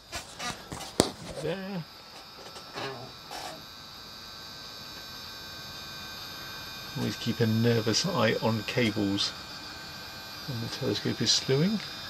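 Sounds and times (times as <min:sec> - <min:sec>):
electric motor hum and whine: 0:00.0 - 0:12.0.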